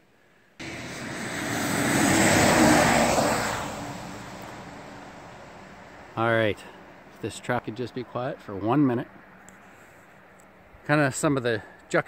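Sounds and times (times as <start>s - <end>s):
vehicle passing on highway: 0.6s - 10.8s.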